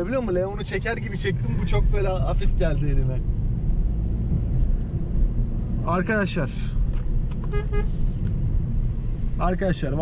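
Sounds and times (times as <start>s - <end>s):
car cabin engine and road rumble: 0.0s - 10.0s.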